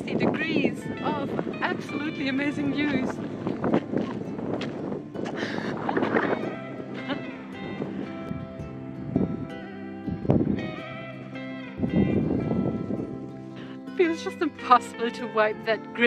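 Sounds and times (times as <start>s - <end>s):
background music: 0.0s - 16.0s
wind noise on microphone: 0.0s - 16.0s.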